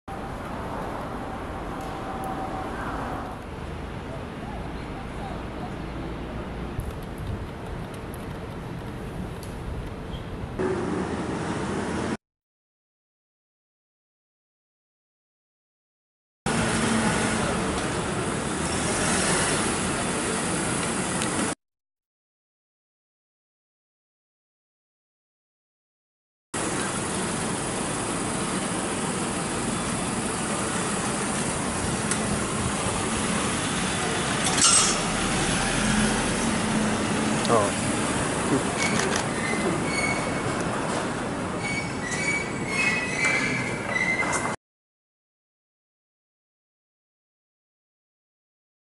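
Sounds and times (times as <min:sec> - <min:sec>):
city street noise: 0:00.1 - 0:12.2, 0:16.5 - 0:21.6, 0:26.6 - 0:44.6
high squealing tones: 0:38.8 - 0:40.5, 0:41.6 - 0:44.5.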